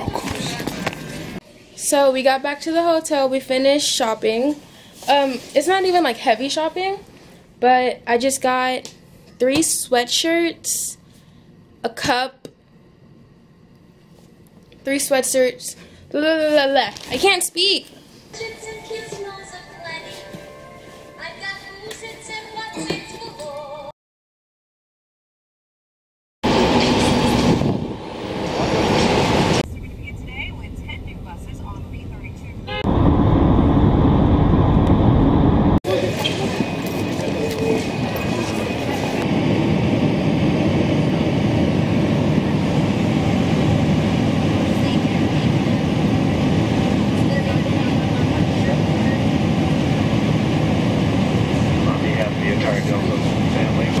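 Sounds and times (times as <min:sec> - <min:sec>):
voices: 0:29.7 - 0:32.7, 0:47.0 - 0:49.5, 0:51.6 - 0:54.0
jet airliner cabin rush: 0:34.5 - 0:54.0.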